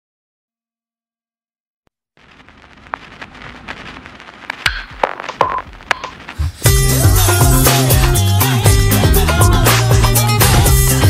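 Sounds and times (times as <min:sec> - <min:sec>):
electronic hiss with crackling clicks: 0:02.2 - 0:06.7.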